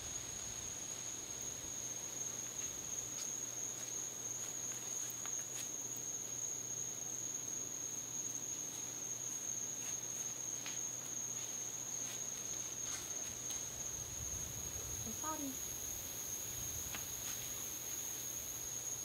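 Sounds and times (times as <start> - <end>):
crickets trilling: 0.0 - 19.0.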